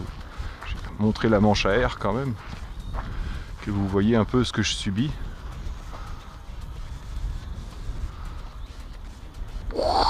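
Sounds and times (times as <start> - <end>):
gusty wind buffeting microphone: 0.0 - 10.0.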